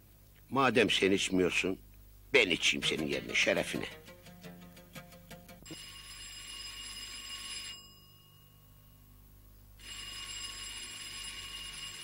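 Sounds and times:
rotary telephone ringing: 5.7 - 8.8, 9.8 - 12.0.

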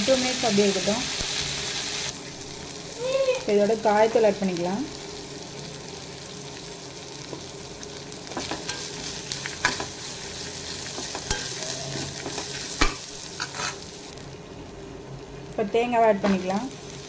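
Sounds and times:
food frying in oil: 0.0 - 17.0
spatula scraping a pan: 13.4 - 13.8.

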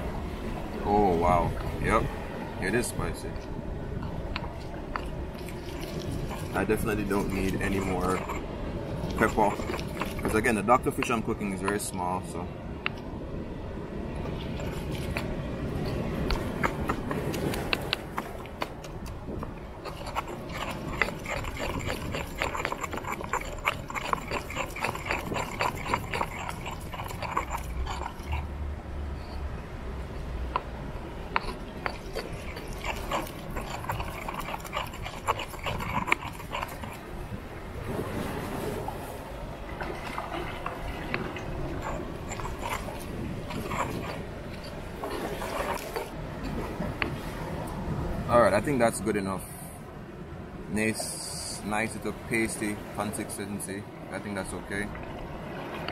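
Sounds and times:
stone pestle grinding and pounding: 4.3 - 11.9, 14.2 - 28.6, 31.3 - 37.1, 39.8 - 46.2.

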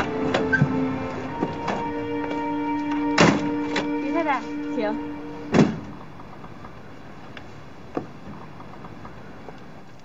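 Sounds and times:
music of held notes: 0.0 - 6.0
car door thunk: 5.5 - 6.0.

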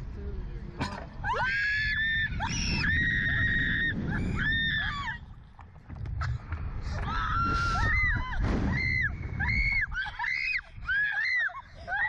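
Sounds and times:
wind rushing on microphone: 1.4 - 12.0.

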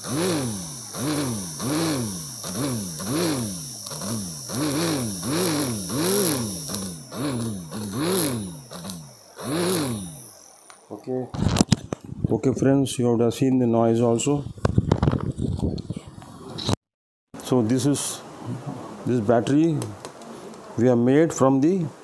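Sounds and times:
small motors whining: 0.0 - 11.0
sparks crackling: 0.8 - 10.9.

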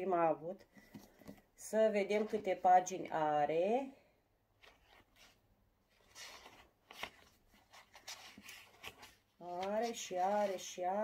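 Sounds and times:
book pages rustling: 0.7 - 2.6, 4.6 - 11.0.

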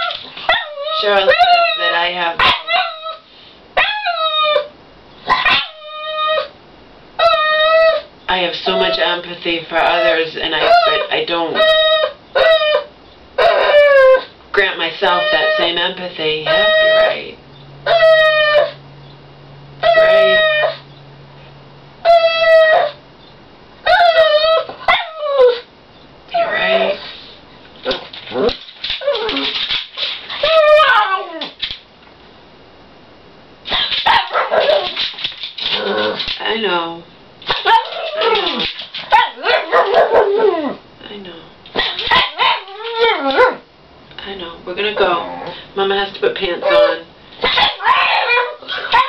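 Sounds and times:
dog barking in high calls: 5.3 - 5.8, 33.7 - 35.0, 37.5 - 38.3, 39.1 - 40.5, 41.8 - 43.6, 46.6 - 49.0.

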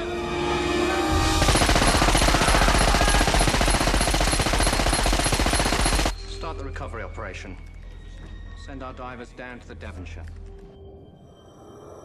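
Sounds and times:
machine-gun fire: 1.3 - 6.2.

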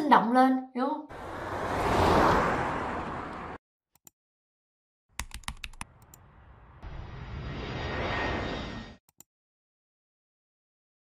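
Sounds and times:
keyboard key clicks: 5.2 - 5.9
jet plane sound effect: 5.9 - 9.0.

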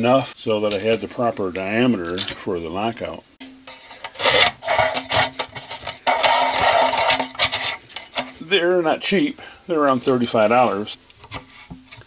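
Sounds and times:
metal rubbing and scraping: 3.6 - 8.6.

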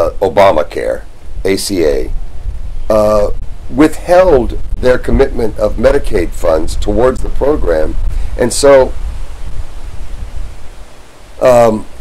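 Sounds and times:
low uneven rumble: 0.0 - 12.0
steady hiss: 0.0 - 12.0.

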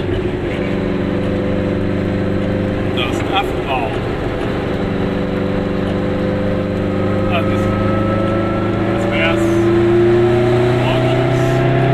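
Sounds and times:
two-stroke car engine accelerating: 0.0 - 11.9.

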